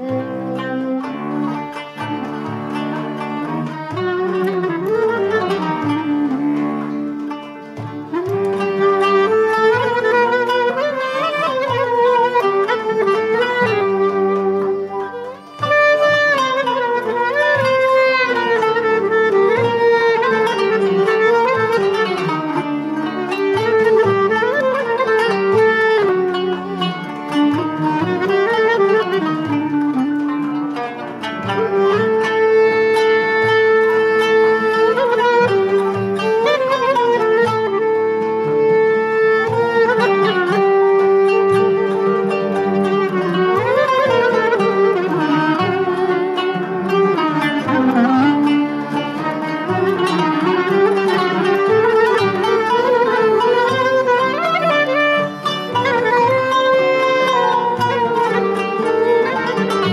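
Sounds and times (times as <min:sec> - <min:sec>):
classical music ensemble: 0:00.0 - 0:59.9.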